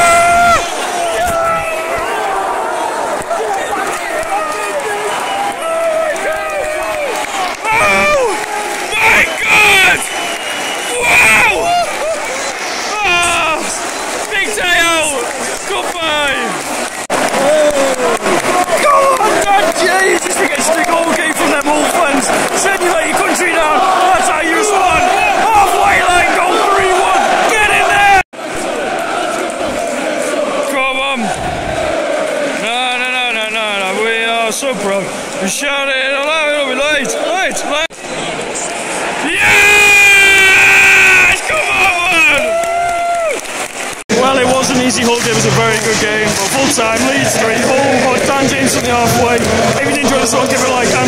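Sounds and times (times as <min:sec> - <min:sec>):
nearby fans yelling: 0:00.0 - 0:34.0
football crowd singing and shouting: 0:00.0 - 0:51.0.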